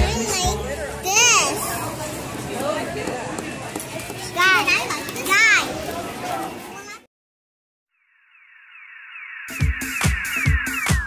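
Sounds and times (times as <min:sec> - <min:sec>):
children chattering and shouting: 0:00.0 - 0:07.1.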